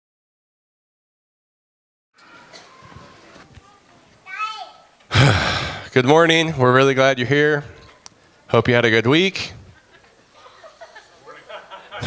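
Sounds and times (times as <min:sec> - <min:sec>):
breath sigh into microphone: 0:05.1 - 0:05.9
man speaking: 0:05.2 - 0:07.8, 0:08.5 - 0:09.6.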